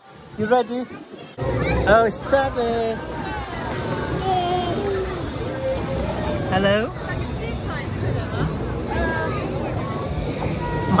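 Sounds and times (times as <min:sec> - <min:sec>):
faint voices: 0:00.0 - 0:11.0.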